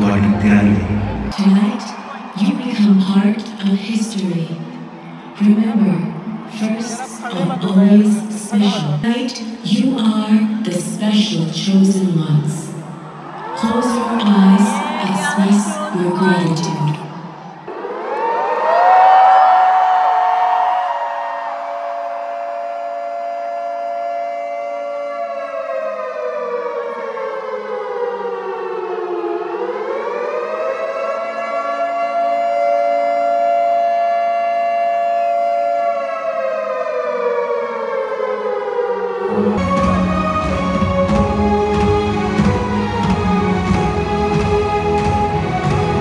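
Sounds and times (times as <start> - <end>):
air-raid siren wailing: 0.0 - 46.0.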